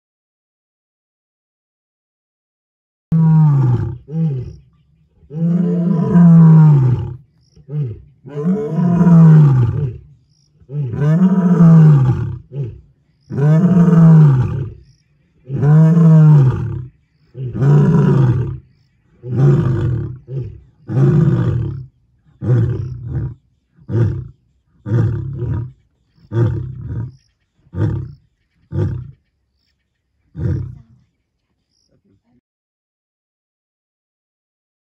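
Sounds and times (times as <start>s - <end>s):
lion roaring: 3.1s - 4.6s, 5.2s - 14.8s, 15.4s - 29.2s, 30.4s - 30.9s.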